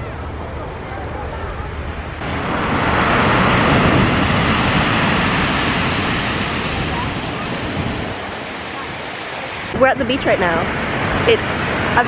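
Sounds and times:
waves washing up pebble beach: 2.2 - 12.0.

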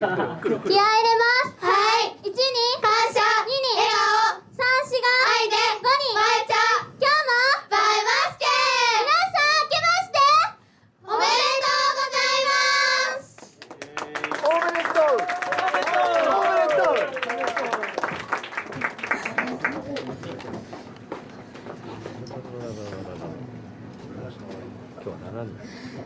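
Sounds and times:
young female voices chanting: 11.0 - 13.4.

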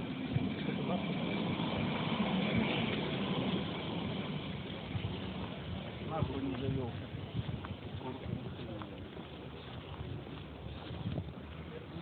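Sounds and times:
motor vehicle running: 0.0 - 12.0.

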